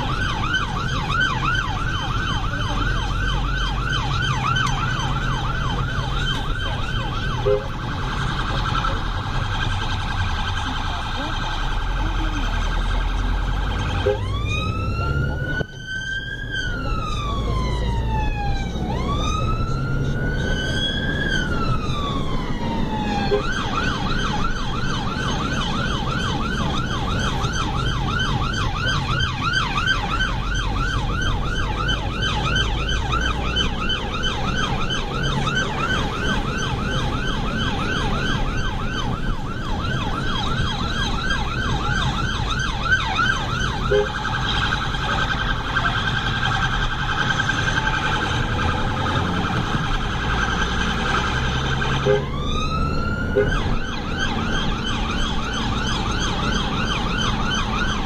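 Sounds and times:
emergency vehicle siren: 0.0s - 58.0s
engine and road noise: 0.0s - 58.0s.

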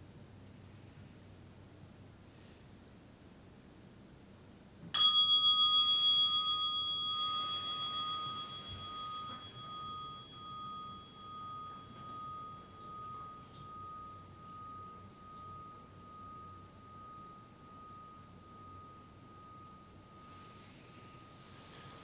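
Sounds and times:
meditation bell ringing: 5.0s - 22.0s.

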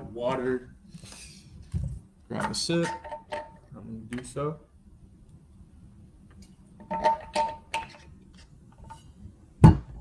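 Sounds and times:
heavy thump: 9.6s - 10.0s.

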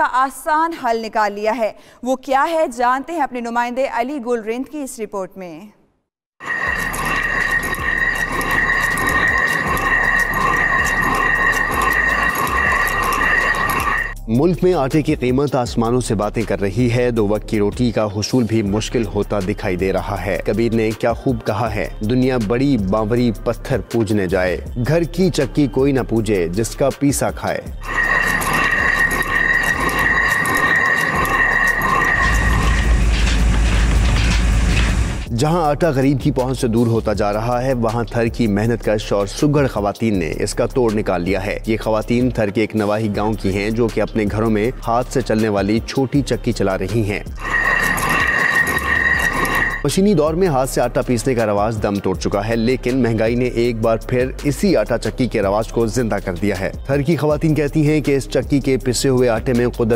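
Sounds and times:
high whine: 6.4s - 14.2s, 27.8s - 35.3s, 47.4s - 49.8s
high-pitched ring: 6.4s - 14.2s, 27.8s - 35.1s, 47.4s - 49.9s
stone mill grinding grain: 6.4s - 14.2s, 27.8s - 35.3s, 47.0s - 50.0s
heavy low rumble: 32.2s - 35.3s.

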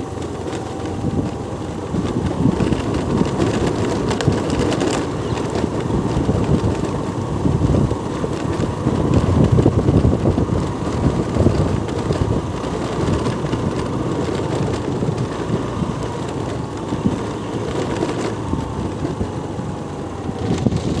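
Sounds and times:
vehicle rumbling on dirt road: 0.0s - 21.0s
wind buffeting microphone: 0.0s - 21.0s.

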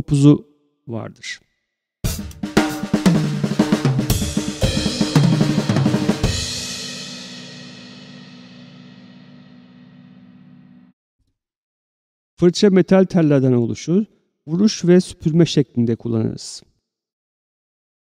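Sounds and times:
drum kit played with sticks: 2.0s - 10.8s.

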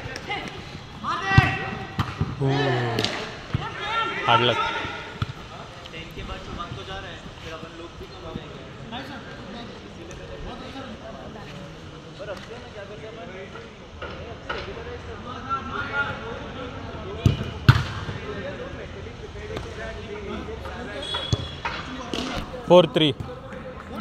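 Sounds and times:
players calling and shouting: 0.0s - 24.0s
football being kicked: 1.3s - 2.4s.

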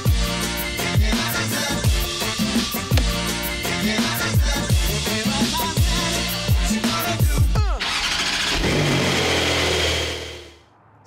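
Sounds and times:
car engine starting and running: 7.8s - 10.6s.

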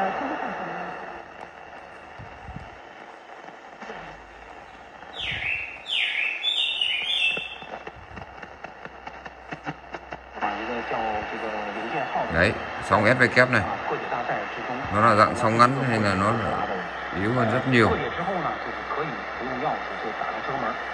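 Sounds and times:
radio static hiss: 0.0s - 20.9s
static crackles: 0.0s - 20.9s
falling radio whistles: 2.4s - 8.6s.

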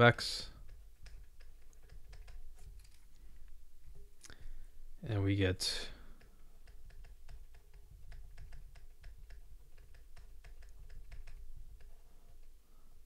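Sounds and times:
faint low hum: 0.0s - 13.0s
stylus tapping on tablet: 0.5s - 2.8s, 6.1s - 12.0s.

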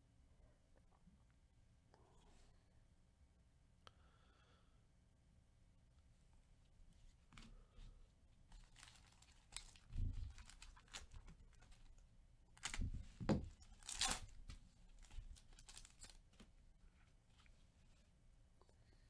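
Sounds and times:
foil wrapper tearing and crinkling: 8.6s - 11.9s, 12.6s - 12.9s, 13.6s - 14.4s, 15.0s - 16.2s.

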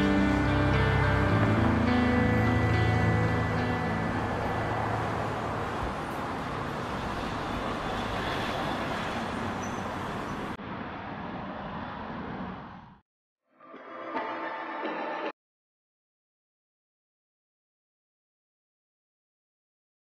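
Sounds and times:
background music: 0.0s - 5.4s, 13.5s - 15.4s
city traffic noise: 0.0s - 13.0s.

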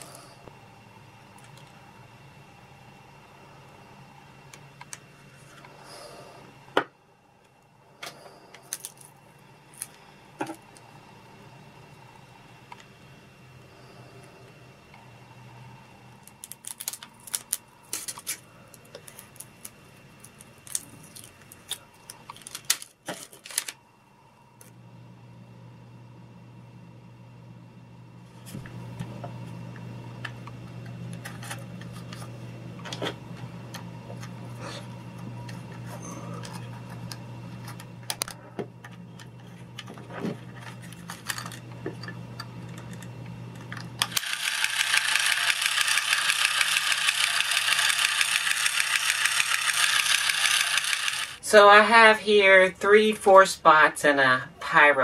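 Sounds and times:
faint steady hum: 0.0s - 55.0s
plastic toy parts clicking: 44.0s - 51.4s
toy robot motor whirring: 44.0s - 51.4s.

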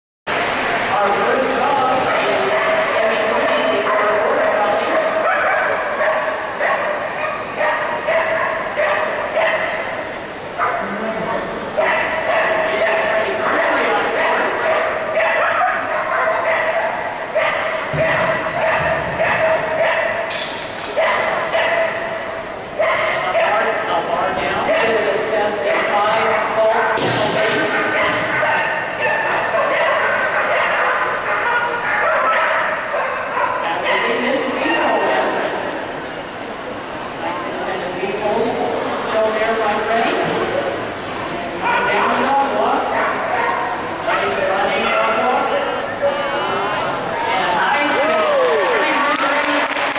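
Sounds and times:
crowd chatter: 0.3s - 49.9s
dog yipping: 5.0s - 9.8s, 11.8s - 12.6s, 13.5s - 20.3s, 20.9s - 22.1s, 22.8s - 23.6s, 27.7s - 34.2s, 42.9s - 45.4s.

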